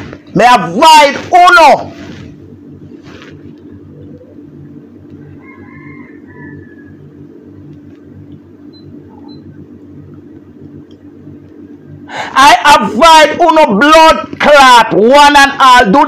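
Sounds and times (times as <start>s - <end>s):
low hum with pulsing beat: 0.0s - 5.4s, 6.2s - 15.9s.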